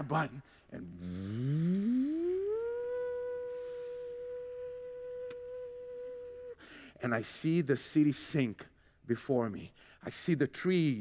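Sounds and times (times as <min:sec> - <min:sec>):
man humming rising tone: 0:00.9 - 0:06.6.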